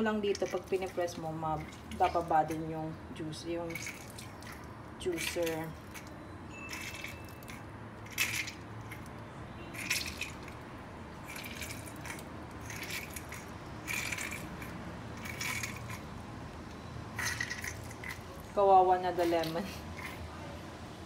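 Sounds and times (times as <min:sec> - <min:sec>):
lemon squelching on juicer: 0:00.0 - 0:16.1, 0:17.1 - 0:20.3.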